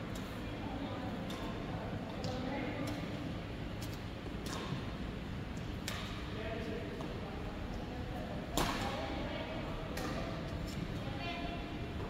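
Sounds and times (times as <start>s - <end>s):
racket striking shuttlecock: 8.6s - 8.9s.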